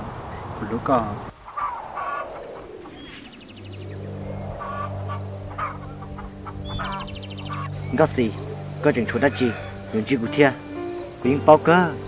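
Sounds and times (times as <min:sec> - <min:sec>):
steady low drone: 0:01.8 - 0:12.0.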